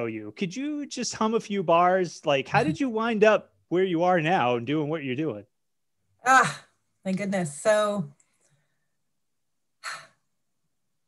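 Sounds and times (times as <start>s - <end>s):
woman breathing: 9.8s - 10.4s.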